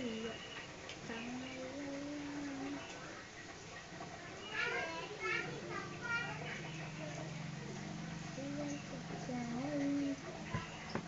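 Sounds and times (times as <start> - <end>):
children calling: 4.1 - 10.9.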